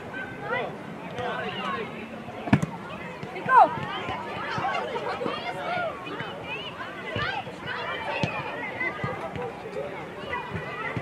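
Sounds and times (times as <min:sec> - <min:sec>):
children's voices chattering: 0:00.0 - 0:11.0.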